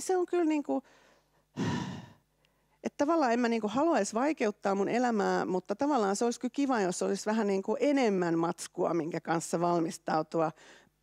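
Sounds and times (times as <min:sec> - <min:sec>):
woman speaking: 0:00.0 - 0:00.8, 0:02.8 - 0:10.6
woman sighing: 0:01.6 - 0:02.3.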